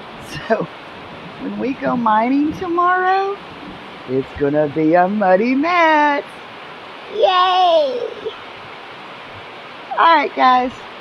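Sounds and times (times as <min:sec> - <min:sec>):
heavy rain falling: 0:00.0 - 0:11.0.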